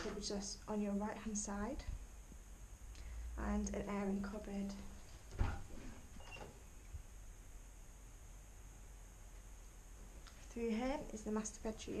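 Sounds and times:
cupboard door squeak: 6.2 - 6.6.

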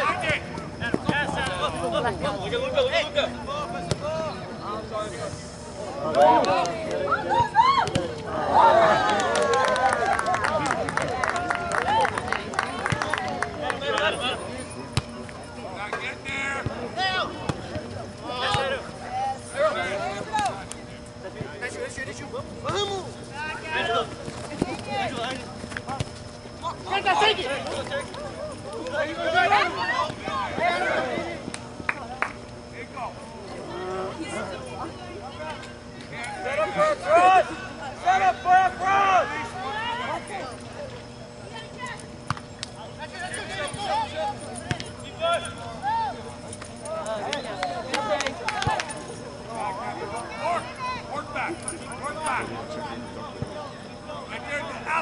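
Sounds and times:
people shouting calls: 5.8 - 14.4, 26.6 - 31.5, 33.1 - 42.1, 42.8 - 55.0.

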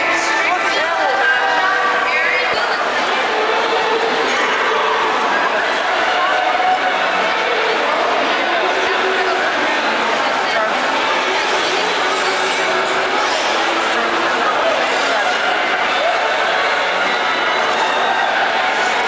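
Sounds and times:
chatter of many voices: 0.0 - 19.0.

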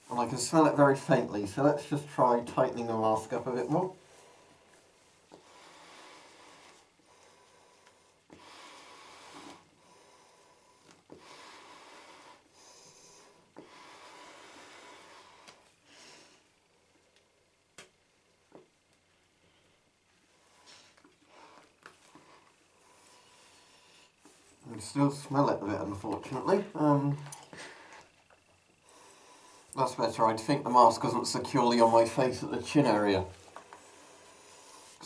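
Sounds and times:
breathing through a gas mask: 5.4 - 16.5, 33.7 - 35.0.

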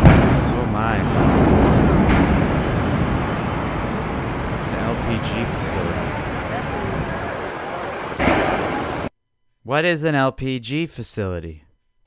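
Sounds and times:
large fire roaring: 0.0 - 9.1.

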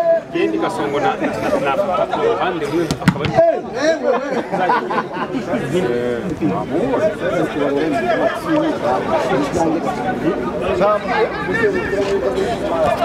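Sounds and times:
people chattering: 0.0 - 13.0.

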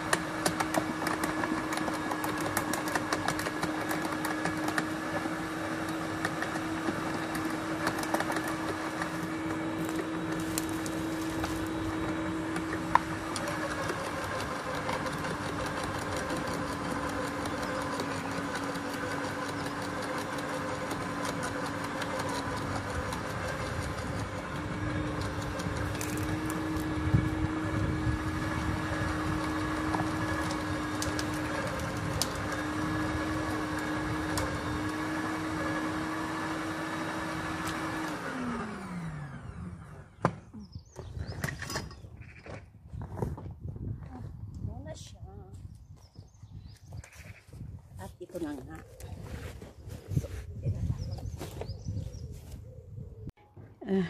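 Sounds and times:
branches crackling in shredder: 0.0 - 40.1
motor winding down: 0.0 - 41.9
garden shredder running: 0.0 - 42.1.

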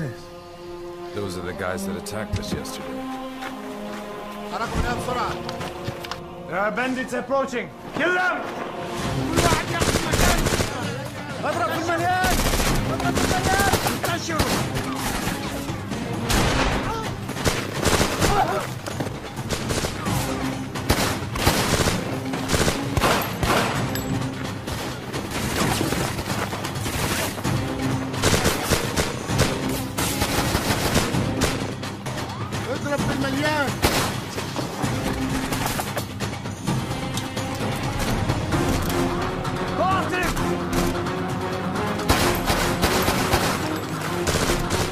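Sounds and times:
action music score: 0.0 - 44.9
rapid gunfire bursts: 9.4 - 10.9, 12.2 - 14.8, 17.4 - 18.6, 19.4 - 20.2, 20.8 - 23.8, 28.2 - 31.8, 42.1 - 44.9.

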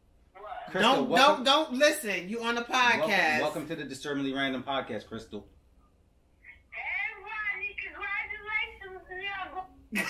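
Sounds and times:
woman's voice through phone speaker: 6.7 - 9.7.

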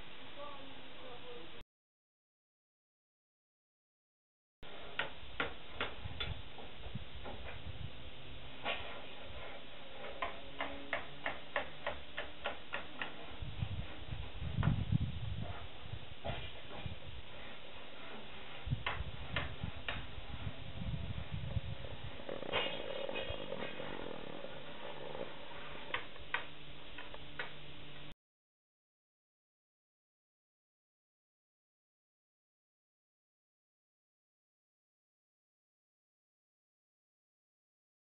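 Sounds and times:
distant hammer strikes: 10.0 - 13.2
low rumble: 18.7 - 25.9.

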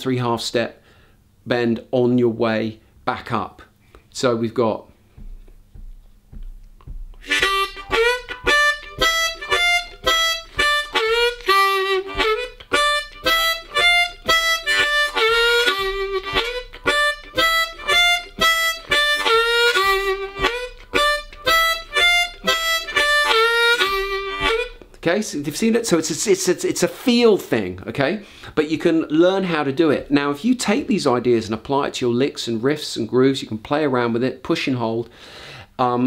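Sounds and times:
harmonica blues riff: 5.2 - 25.0.

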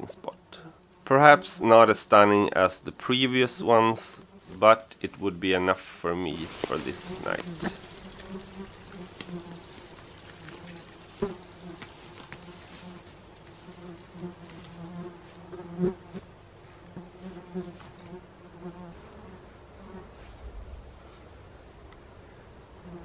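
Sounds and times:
horseflies buzzing: 6.6 - 20.3.

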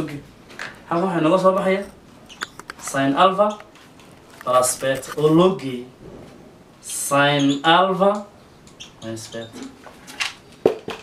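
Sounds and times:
marker squeaking on whiteboard: 0.9 - 3.7, 6.9 - 10.1
man speaking: 2.8 - 3.7, 9.0 - 9.8.

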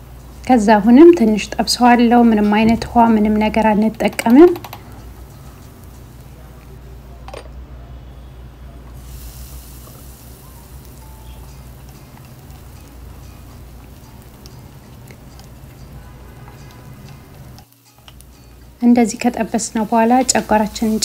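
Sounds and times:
vegetables sizzling in oil: 0.0 - 7.0, 8.8 - 21.0.

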